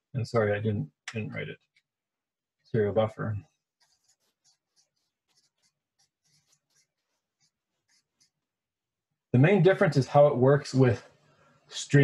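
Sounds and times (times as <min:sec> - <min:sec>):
marker pen scratching: 0:03.5 - 0:08.5.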